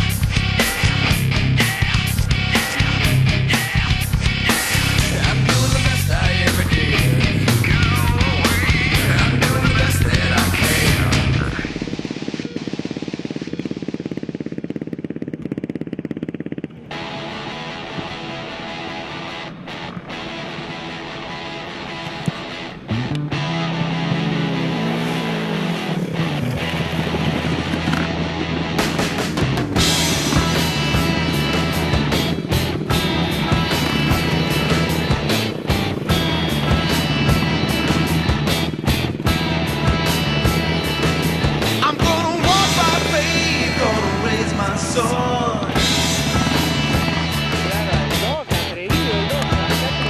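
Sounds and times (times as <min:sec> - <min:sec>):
guitar music: 0:00.0 - 0:11.9, 0:16.8 - 0:50.0
steady drum beat: 0:00.0 - 0:15.8, 0:27.1 - 0:50.0
quad bike engine running: 0:00.0 - 0:50.0.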